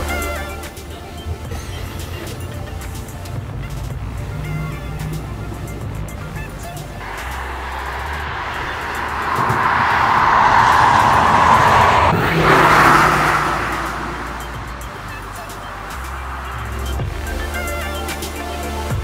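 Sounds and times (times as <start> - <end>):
background music: 0.0 - 9.3, 12.2 - 19.0
car driving past: 4.4 - 18.0.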